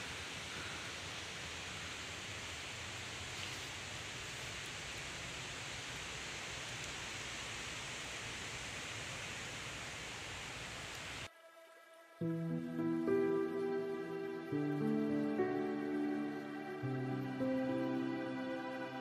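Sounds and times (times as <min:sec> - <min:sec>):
faint music tones: 0:11.3 - 0:19.0.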